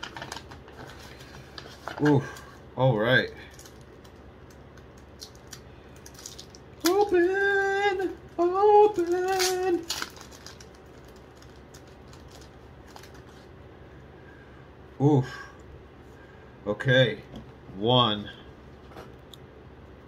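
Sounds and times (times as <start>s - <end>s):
cards and packaging rustling: 0.0s - 2.6s, 3.5s - 7.6s, 8.8s - 13.5s.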